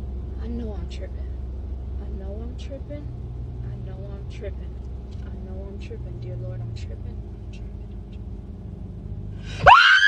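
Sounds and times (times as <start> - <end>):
low rumble inside car: 0.0 - 10.0
loud high-pitched scream: 9.6 - 10.0.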